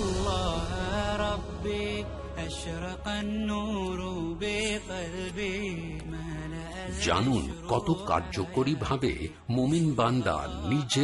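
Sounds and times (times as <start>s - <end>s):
slow chanted vocal melody: 0.0s - 11.0s.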